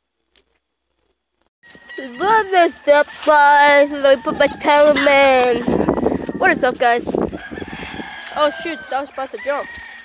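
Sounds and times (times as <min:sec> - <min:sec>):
outdoor noise: 0:00.0 - 0:10.0.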